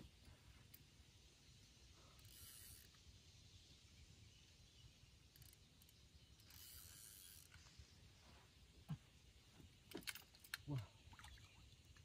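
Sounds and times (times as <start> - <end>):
fishing reel clicking: 2.2 - 3.0, 5.3 - 7.6.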